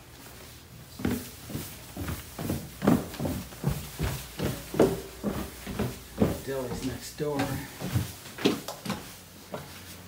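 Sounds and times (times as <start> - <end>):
footsteps down indoor stairs: 0.0 - 10.0.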